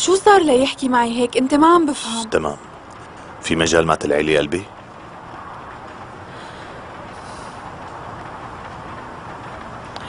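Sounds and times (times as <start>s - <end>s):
steady hiss and rumble: 0.0s - 10.0s.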